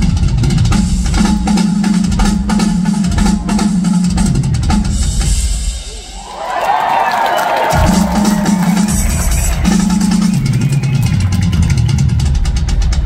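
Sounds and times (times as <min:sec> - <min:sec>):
cymbals: 0:07.6 - 0:12.2
drum rolls across toms: 0:07.7 - 0:13.0.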